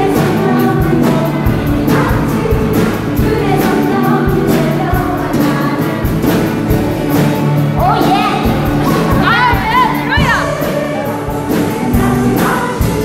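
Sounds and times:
band playing a steady beat: 0:00.0 - 0:13.0
choir singing: 0:00.0 - 0:13.0.

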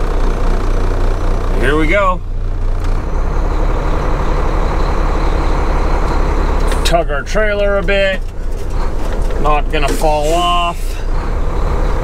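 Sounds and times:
truck diesel engine under load: 0:00.0 - 0:12.0.

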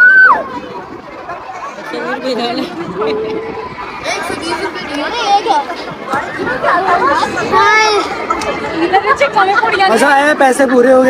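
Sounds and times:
background chatter: 0:00.0 - 0:11.0
people talking and calling out: 0:00.0 - 0:11.0.

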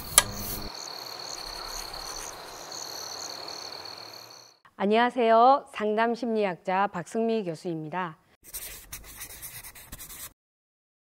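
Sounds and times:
scratchy rustling paper sound: 0:08.4 - 0:10.4.

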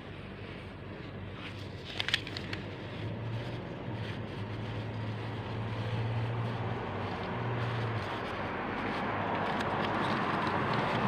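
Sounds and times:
low engine hum: 0:00.0 - 0:11.0
street traffic: 0:00.0 - 0:11.0.

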